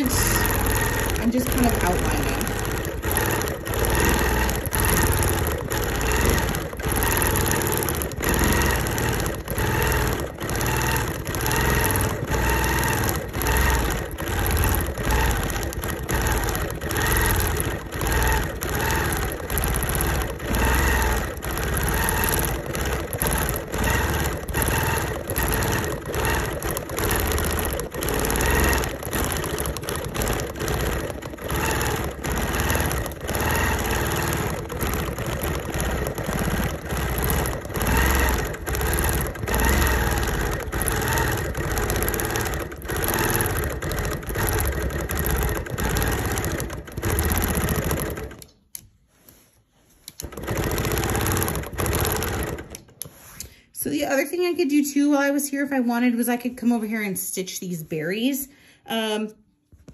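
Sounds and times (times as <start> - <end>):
sewing machine stitching: 0.0 - 48.8, 50.0 - 55.3.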